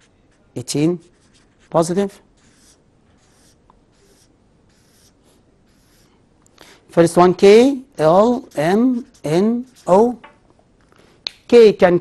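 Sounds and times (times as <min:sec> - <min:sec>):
marker pen scratching on paper: 0:00.0 - 0:06.2, 0:08.0 - 0:10.2.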